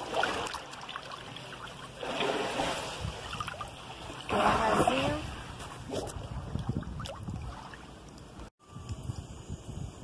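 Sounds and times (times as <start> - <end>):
pool water sloshing and lapping: 0.0 - 8.4.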